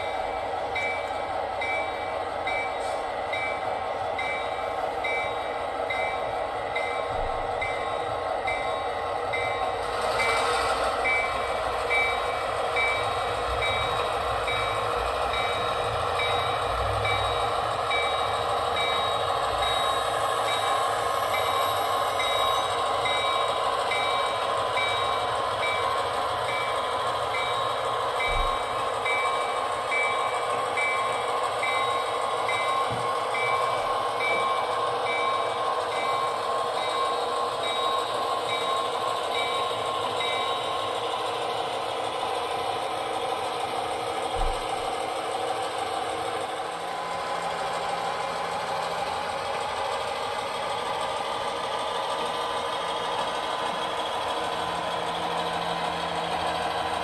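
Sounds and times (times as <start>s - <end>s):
model locomotive diesel engine sound: 0.0s - 57.0s.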